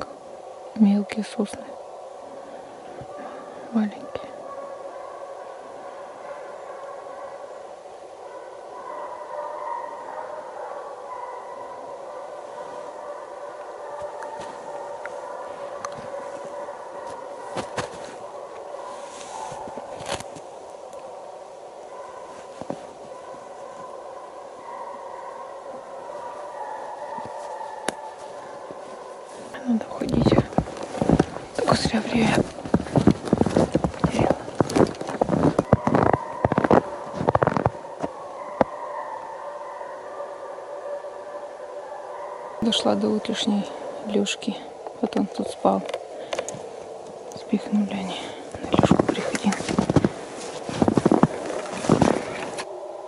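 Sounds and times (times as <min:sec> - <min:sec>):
hounds baying: 0:01.7 - 0:53.0.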